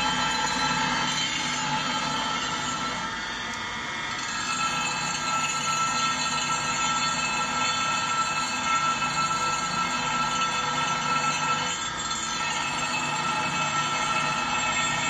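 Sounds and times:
grinding wheel sharpening blade: 0.0s - 3.2s, 4.1s - 15.0s.

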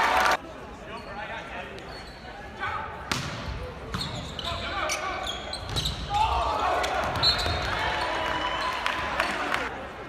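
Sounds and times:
voices and crowd noise: 0.0s - 10.0s
sneakers squeaking on court: 0.9s - 2.4s, 3.1s - 6.1s, 7.0s - 7.7s.

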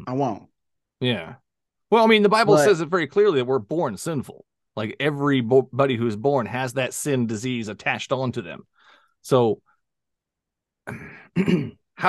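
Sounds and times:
man clearing his throat: 10.8s - 12.0s.

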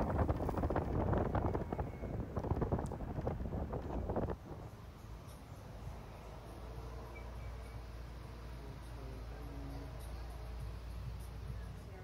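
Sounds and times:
wind buffeting microphone: 0.0s - 4.7s
road noise rumble: 0.0s - 12.0s.

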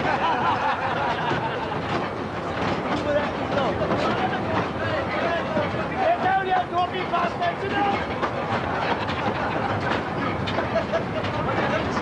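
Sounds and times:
train carriages rattling on rails: 0.0s - 12.0s.

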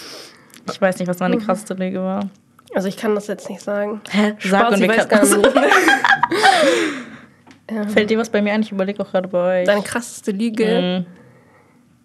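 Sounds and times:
person speaking: 1.2s - 1.8s, 4.4s - 6.8s, 9.6s - 11.0s
woman laughing: 4.9s - 6.9s
breathy gasp: 6.3s - 7.3s.

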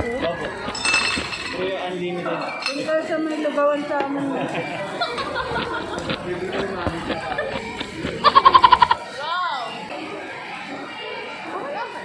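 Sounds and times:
restaurant chatter: 0.0s - 12.0s
cutlery clinking on tableware: 2.3s - 3.4s.

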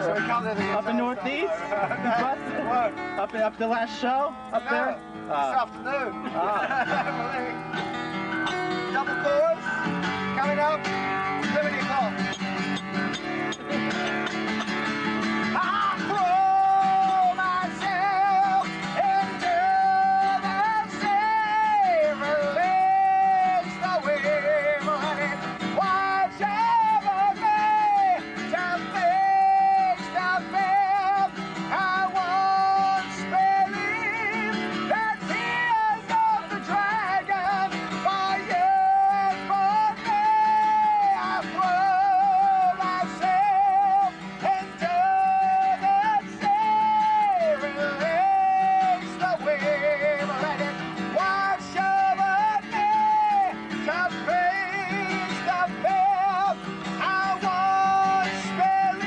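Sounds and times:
acoustic guitar chords: 0.0s - 59.0s
high voice singing with vibrato: 15.4s - 59.0s.

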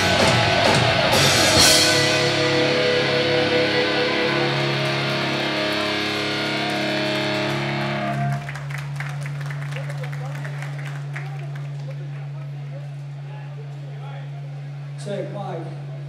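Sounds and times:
cymbal crash: 0.0s - 8.0s
live rock band: 0.0s - 11.7s
electric guitars and bass chord: 0.0s - 16.0s
low amplifier hum: 0.0s - 16.0s.

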